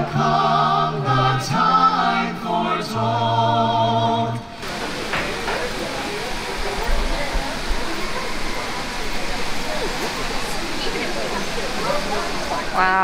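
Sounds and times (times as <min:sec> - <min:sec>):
crowd murmur: 0:04.3 - 0:13.0.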